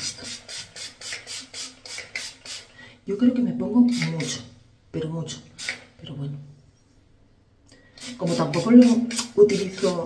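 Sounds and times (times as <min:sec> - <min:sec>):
spray bottle spritzes: 0:00.0 - 0:02.7, 0:03.9 - 0:04.4, 0:05.6 - 0:05.9, 0:08.0 - 0:10.0.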